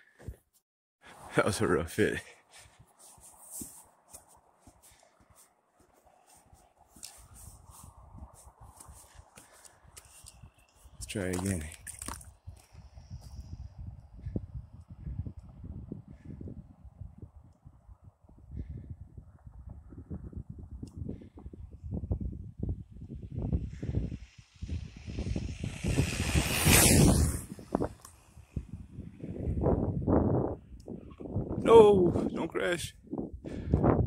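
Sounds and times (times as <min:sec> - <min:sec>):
wind buffeting microphone: 0:04.7 - 0:34.0
rc truck passing at speed: 0:23.2 - 0:29.6.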